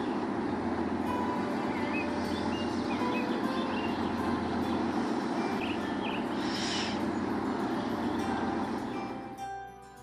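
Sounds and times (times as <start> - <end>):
boat engine burble: 0.0 - 10.0
bird chirps: 1.4 - 4.8, 5.4 - 7.1.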